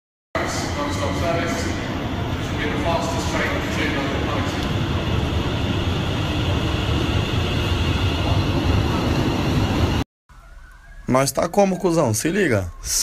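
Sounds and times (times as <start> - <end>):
underground train rumbling: 0.4 - 10.0.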